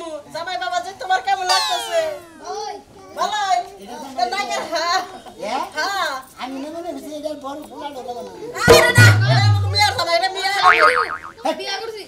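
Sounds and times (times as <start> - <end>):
comic hit sound effect: 8.7 - 10.1
low held tone: 8.7 - 10.1.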